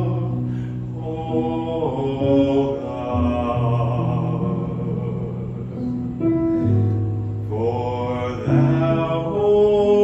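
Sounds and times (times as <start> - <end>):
man singing into a microphone: 0.0 - 6.0, 7.5 - 10.0
low held accompaniment notes: 0.0 - 10.0.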